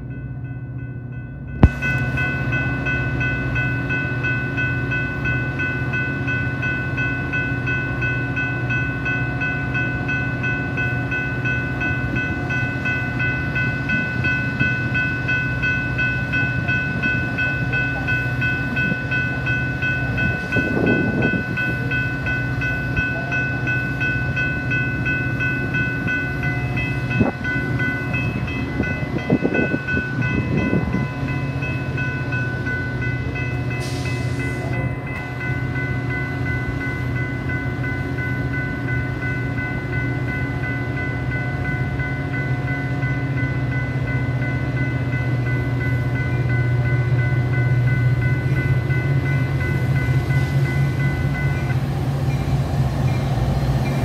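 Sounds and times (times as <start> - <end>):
crossing warning bell ringing: 0.0 - 54.0
diesel locomotive engine hum: 0.0 - 54.0.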